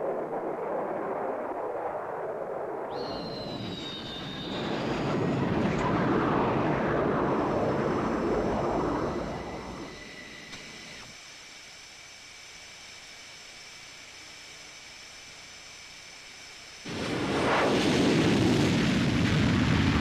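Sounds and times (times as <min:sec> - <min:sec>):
jet engines roaring past: 0:00.0 - 0:11.2, 0:15.7 - 0:20.0
steady hiss with high whine: 0:02.4 - 0:20.0.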